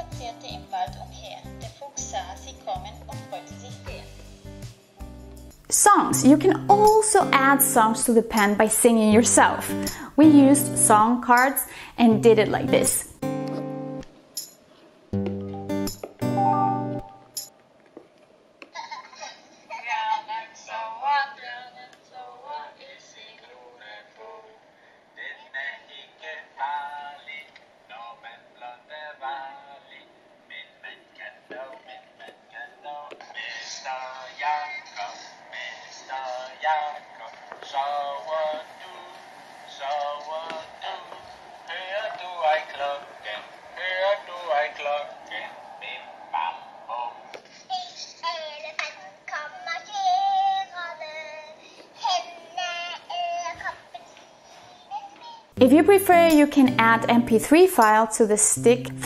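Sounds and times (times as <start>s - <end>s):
person singing through small speaker: 0.0s - 4.2s, 5.7s - 13.1s, 19.7s - 24.6s, 25.2s - 39.2s, 47.7s - 59.0s
short musical notes: 55.6s - 59.0s.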